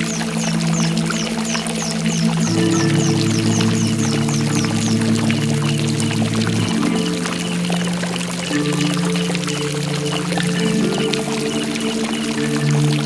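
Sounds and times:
running water: 0.0 - 13.0
slow ambient instrumental music: 0.0 - 13.0.

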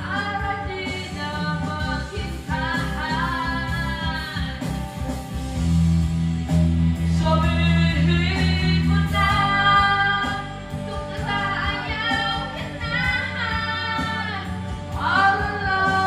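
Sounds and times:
woman singing karaoke: 0.0 - 5.2, 7.1 - 16.0
karaoke backing track: 0.0 - 16.0.

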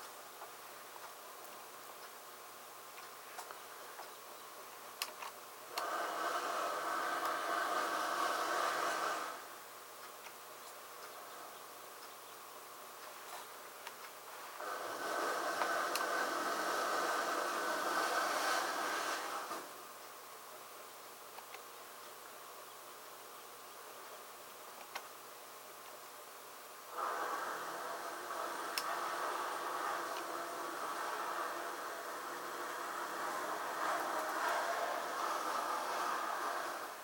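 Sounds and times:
mechanical buzz: 26.9 - 37.0.

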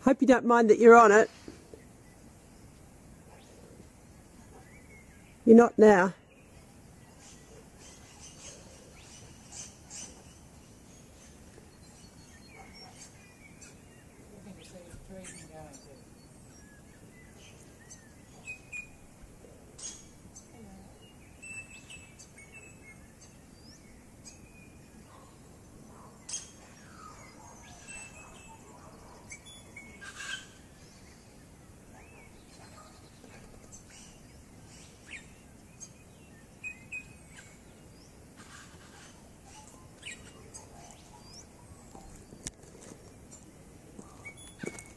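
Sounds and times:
faint outdoor background: 0.0 - 44.9
birds chirping and calling: 0.2 - 44.9.

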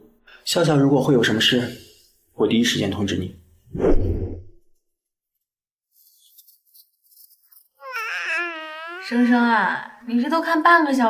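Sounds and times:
baby crying: 7.8 - 9.7.

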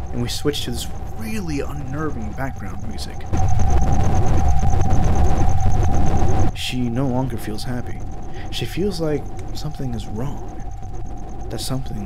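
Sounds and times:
droning horror music: 0.0 - 12.0
high pulsing tone: 0.0 - 12.0.

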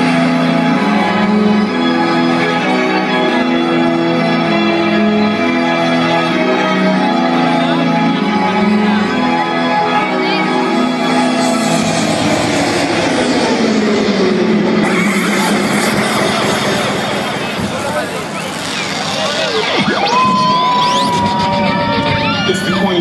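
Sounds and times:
crowd cheering and shouting: 0.0 - 23.0
low tone gliding downward: 7.4 - 23.0
long high note sagging: 8.4 - 23.0
loud club music: 11.0 - 23.0.

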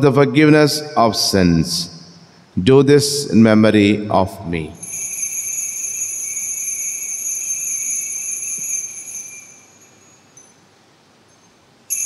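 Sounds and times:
altar bell ringing: 4.8 - 12.0.

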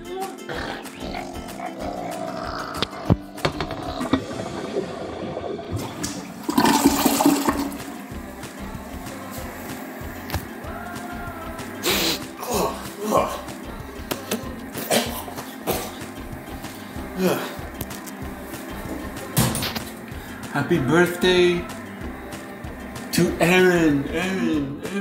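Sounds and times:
toilet flushing: 1.2 - 10.2.

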